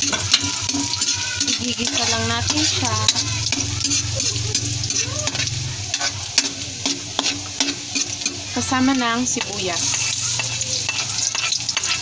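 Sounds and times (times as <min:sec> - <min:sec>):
garlic sizzling in hot oil: 0:00.0 - 0:12.0
metal spoon scraping a wok: 0:00.0 - 0:12.0.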